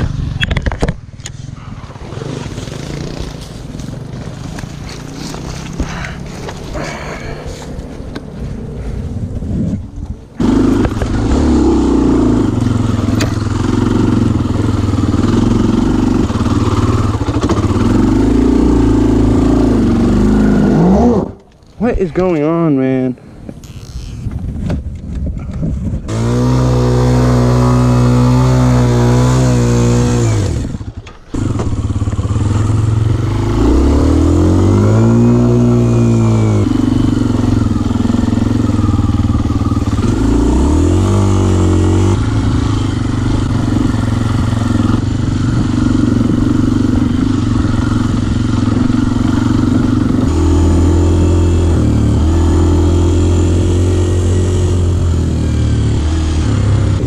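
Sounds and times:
motorcycle engine revving: 0.0s - 8.7s, 9.3s - 21.7s, 23.6s - 57.0s.

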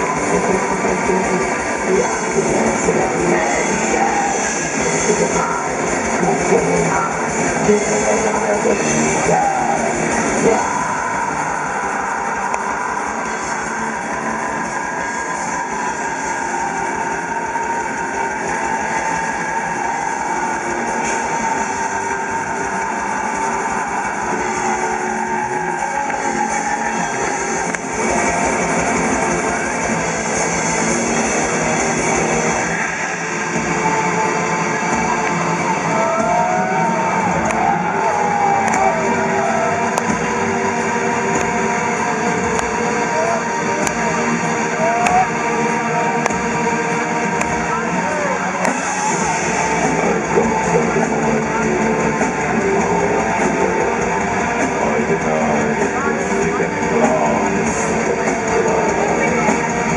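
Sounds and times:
very fast drumming: 0.0s - 34.0s, 34.9s - 40.6s, 46.1s - 59.9s
distorted electric guitars: 0.0s - 59.9s.

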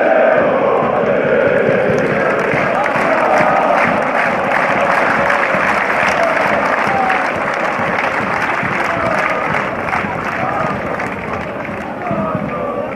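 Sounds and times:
crowd voices: 0.0s - 12.9s
crowd clapping: 1.7s - 12.9s.

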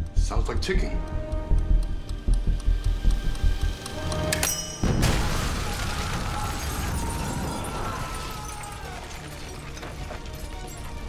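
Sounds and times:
tense film music: 0.0s - 11.0s
heavy explosion boom: 4.8s - 7.9s.

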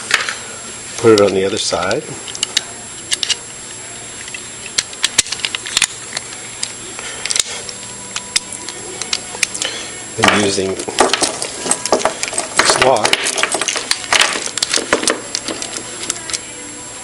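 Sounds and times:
small metal parts clicking: 4.7s - 9.7s, 10.3s - 16.4s.

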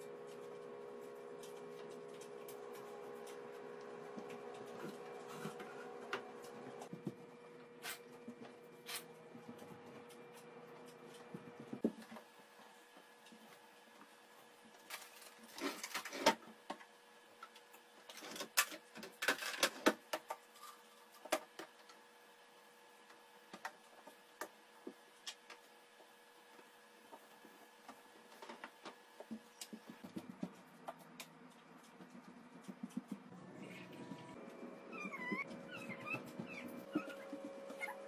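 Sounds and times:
steady hum: 0.0s - 17.4s, 20.6s - 38.0s.

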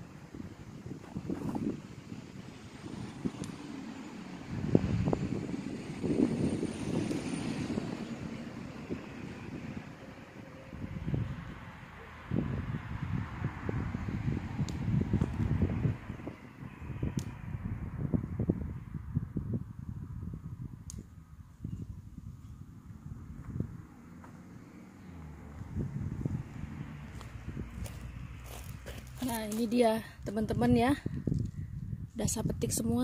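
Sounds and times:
wind gusting on microphone: 0.0s - 33.0s.

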